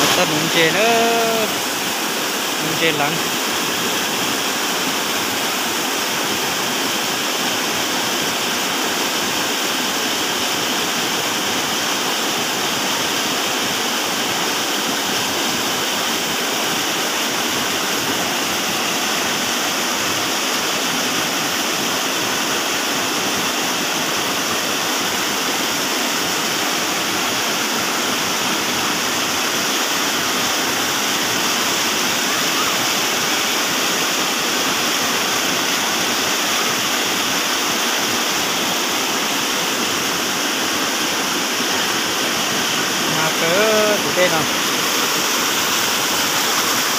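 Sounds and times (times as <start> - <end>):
stream rushing over boulders: 0.0 - 46.9.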